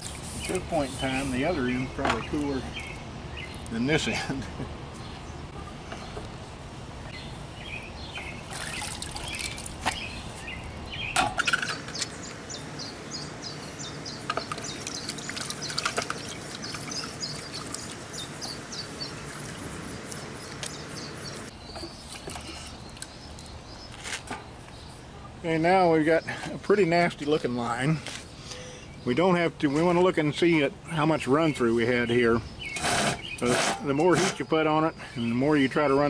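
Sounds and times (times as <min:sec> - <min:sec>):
birds chirping: 0:07.1 - 0:22.0
water sloshing in a bucket: 0:08.4 - 0:10.0, 0:11.4 - 0:23.1.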